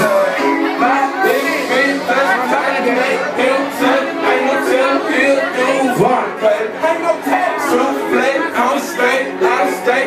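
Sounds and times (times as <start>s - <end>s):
club music: 0.0s - 10.0s
loud crowd chatter: 0.0s - 10.0s.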